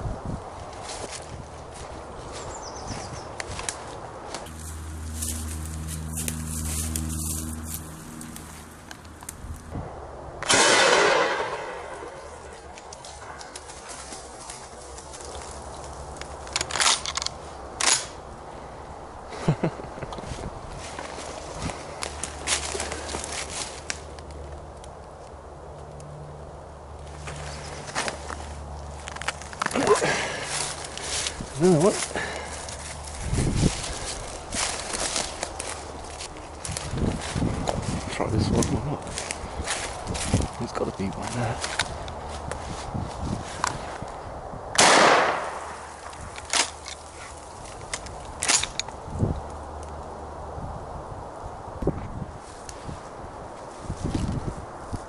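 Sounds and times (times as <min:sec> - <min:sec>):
footsteps through undergrowth: 0:00.2 - 0:09.8, 0:11.1 - 0:16.6, 0:20.2 - 0:24.9, 0:27.0 - 0:44.3, 0:45.3 - 0:48.4
shotgun shot: 0:10.4 - 0:12.3, 0:44.8 - 0:45.8.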